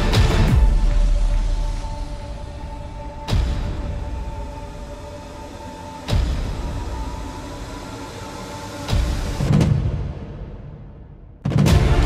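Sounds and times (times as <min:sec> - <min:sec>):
dramatic soundtrack music: 0:00.0 - 0:12.0.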